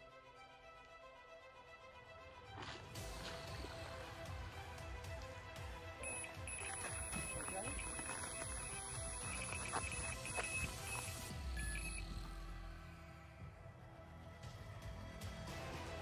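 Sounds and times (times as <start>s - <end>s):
background music: 0.0s - 16.0s
electronic bite alarm tone: 6.0s - 12.3s.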